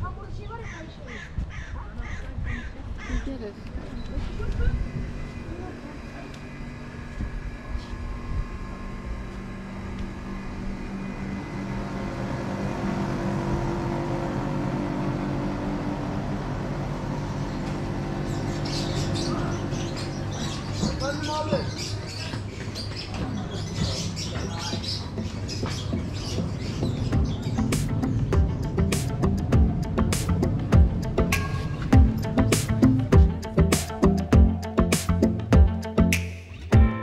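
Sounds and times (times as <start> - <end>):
people's voices: 0.0 - 6.5
bird calling: 17.2 - 28.2.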